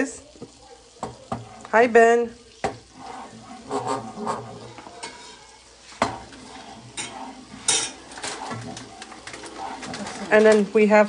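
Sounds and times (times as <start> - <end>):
butter sizzling in a frying pan: 0.0 - 11.0
spoon knocking on pan: 0.4 - 1.7, 2.6 - 2.9, 6.0 - 8.0
wooden spoon scraping a pan: 1.0 - 11.0.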